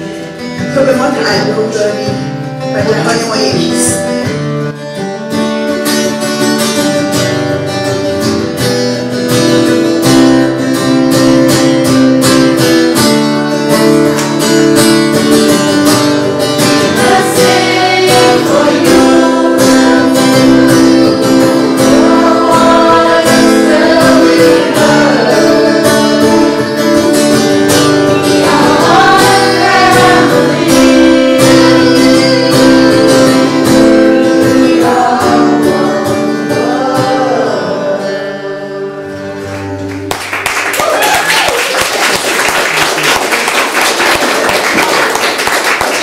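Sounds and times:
acoustic guitar strumming: 0.0 - 40.5
group singing: 16.5 - 39.8.

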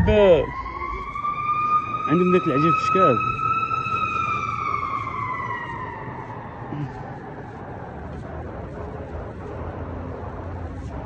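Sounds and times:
siren falling in pitch: 0.0 - 8.6.

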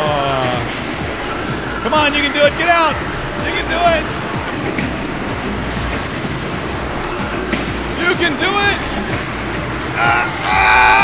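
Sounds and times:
arena crowd: 0.0 - 11.0
spectator shouting: 9.9 - 11.0.

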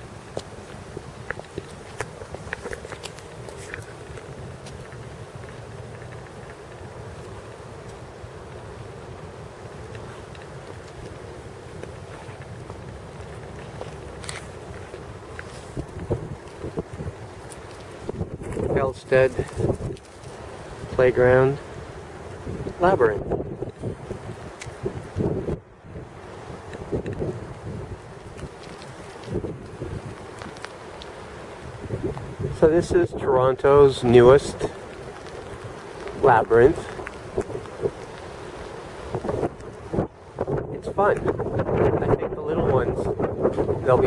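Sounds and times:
footsteps on stepping stones: 0.0 - 8.6, 9.7 - 20.5, 26.7 - 32.4, 33.8 - 39.8
wind rumbling on microphone: 0.0 - 44.0.

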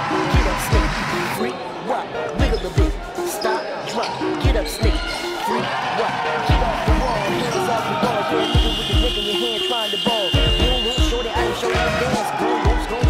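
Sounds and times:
synth riff: 0.0 - 3.6, 6.3 - 13.0
deep bass kick drums: 6.5 - 7.2, 8.6 - 9.2, 10.4 - 12.0.

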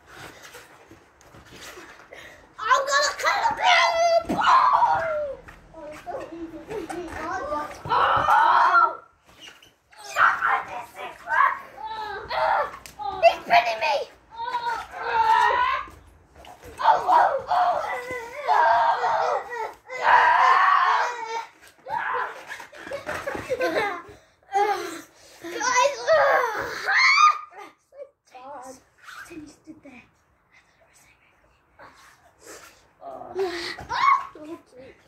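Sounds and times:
boys shouting and screaming: 2.5 - 28.2, 32.6 - 35.0
boys laughing: 22.4 - 24.7.

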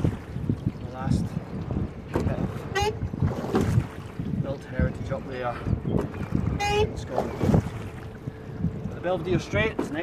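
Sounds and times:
gusty wind on microphone: 0.0 - 10.0
water sounds from hull and oars: 0.0 - 10.0.

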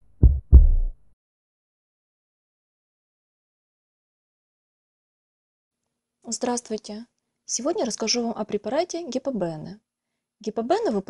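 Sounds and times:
heartbeat thumps: 0.0 - 1.0.

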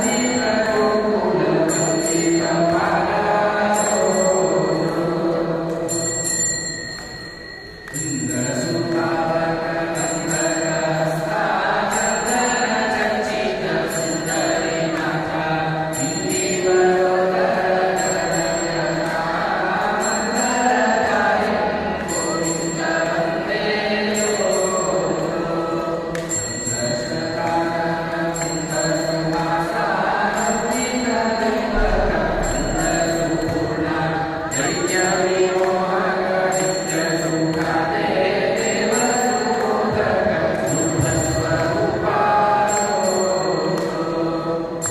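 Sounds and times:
faint high ringing: 0.0 - 44.9
melodic mantra chanting: 0.0 - 44.9
bright bell jingle: 5.9 - 11.1, 17.9 - 21.4, 22.1 - 29.7, 30.4 - 35.6, 42.6 - 44.9.

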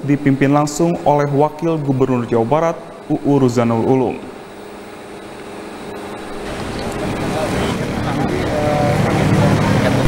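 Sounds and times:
indistinct voices: 6.4 - 10.0
traffic: 6.4 - 10.0.

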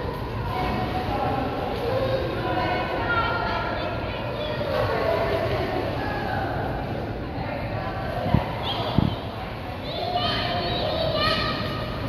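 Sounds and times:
children's voices and calls: 1.7 - 6.6, 8.2 - 12.0.

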